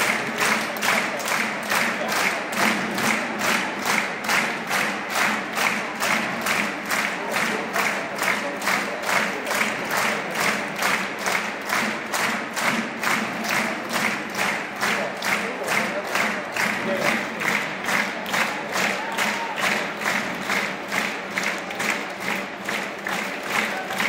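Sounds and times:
crowd clapping in unison: 0:00.0 - 0:24.0.

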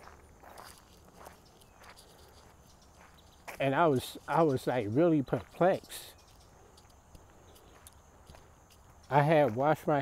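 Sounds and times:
faint footsteps: 0:00.0 - 0:10.0.

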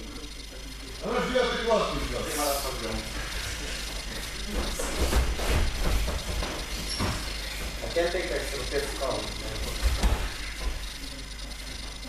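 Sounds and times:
bare feet slapping on mats: 0:04.0 - 0:07.9.

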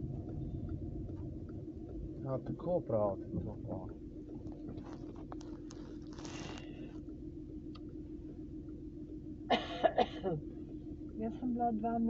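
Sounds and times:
low room hum: 0:00.0 - 0:12.0
person coughing: 0:09.5 - 0:10.4.

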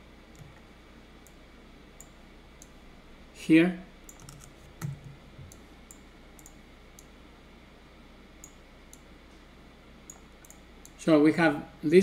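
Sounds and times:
computer mouse and keyboard clicks: 0:00.3 - 0:00.6, 0:04.1 - 0:07.1.

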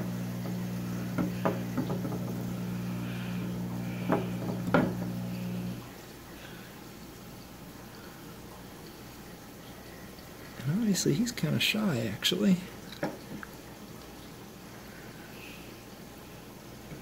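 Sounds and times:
electrical hum: 0:00.0 - 0:17.0
light knocks and taps: 0:01.2 - 0:02.4.

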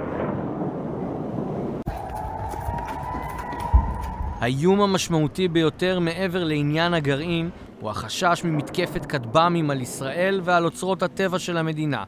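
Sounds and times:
rocket launch rushing: 0:00.0 - 0:01.9
siren wailing: 0:01.9 - 0:04.6.

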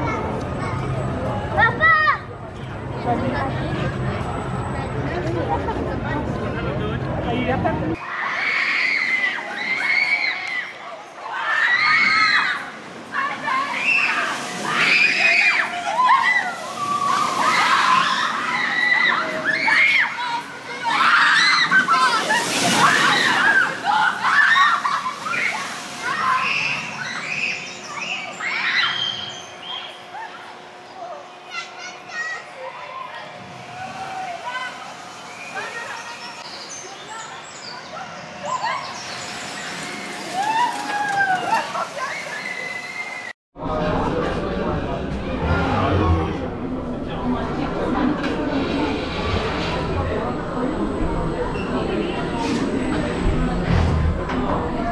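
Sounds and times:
people's voices: 0:09.0 - 0:54.9
roller coaster rushing over track: 0:43.7 - 0:54.9.

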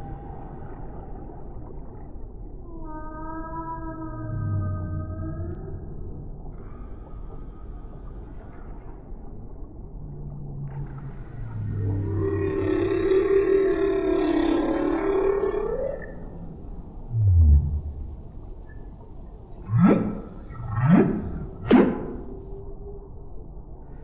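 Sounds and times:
humpback whale song: 0:00.0 - 0:08.9, 0:10.0 - 0:23.6.

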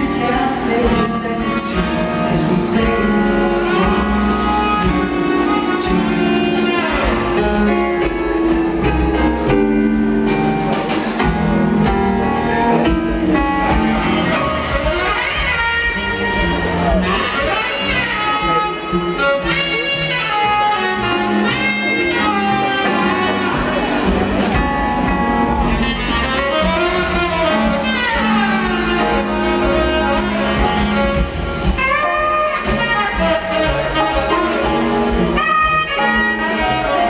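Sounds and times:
drum kit keeping time: 0:00.0 - 0:37.0
saxophone melody: 0:00.0 - 0:37.0
smooth jazz band playing: 0:00.0 - 0:37.0
upright double bass: 0:00.0 - 0:37.0.

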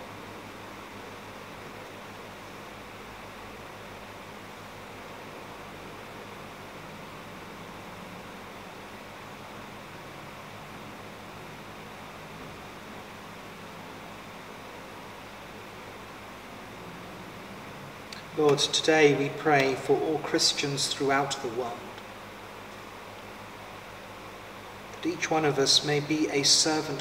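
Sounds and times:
background hiss: 0:00.0 - 0:27.0
faint low hum: 0:00.0 - 0:27.0.

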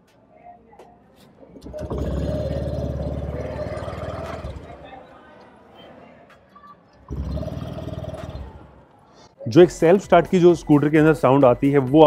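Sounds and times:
scooter engine starting and idling: 0:01.5 - 0:04.9, 0:07.1 - 0:08.8.

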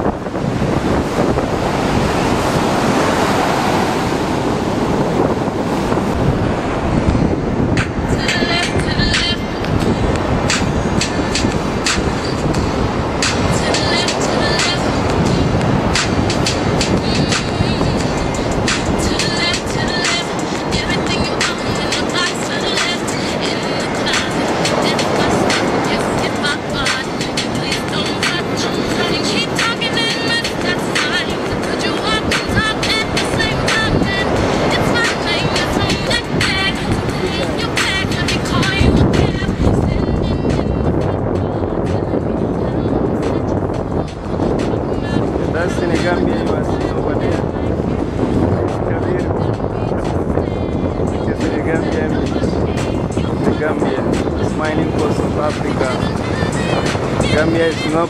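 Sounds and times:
background voices: 0:00.0 - 0:58.0
wind buffeting microphone: 0:00.0 - 0:58.0
music: 0:06.0 - 0:58.0.

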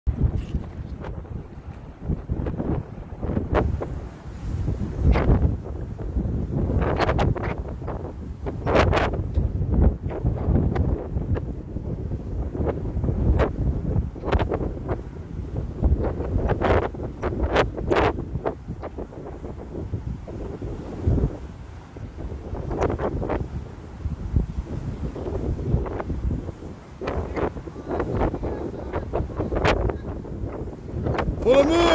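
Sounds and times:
wind buffeting microphone: 0:00.1 - 0:31.9.

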